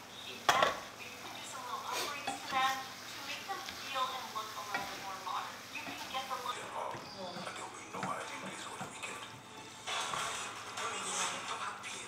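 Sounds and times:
food sizzling in a frying pan: 0.0s - 12.0s
spatula scraping a pan: 1.8s - 6.4s, 7.0s - 11.7s.

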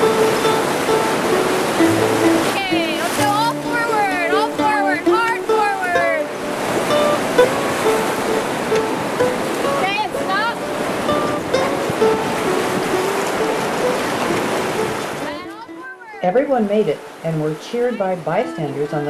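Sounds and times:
music with short held notes: 0.0s - 14.4s
whitewater rushing: 0.0s - 19.0s.

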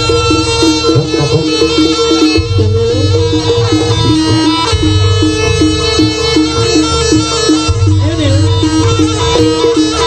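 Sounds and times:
low percussion: 0.0s - 10.0s
reedy wind instrument: 0.0s - 10.0s
repeating two-note figure: 0.0s - 10.0s.

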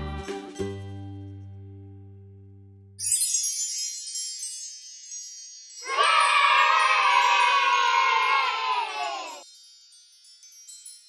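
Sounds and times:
high shimmering chime: 3.0s - 11.0s.

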